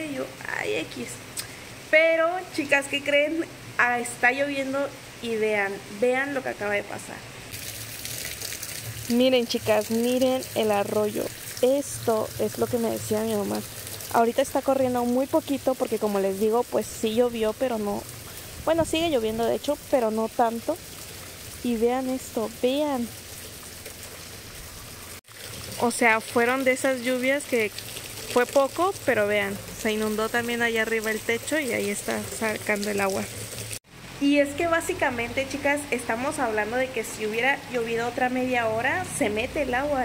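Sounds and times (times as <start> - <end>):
runoff water running: 3.9 - 40.0
light rain on flooded street: 7.5 - 36.7.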